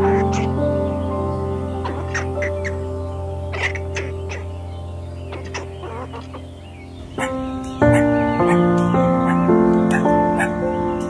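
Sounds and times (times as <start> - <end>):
background music: 0.0 - 11.0
chicken clucking: 5.3 - 6.5.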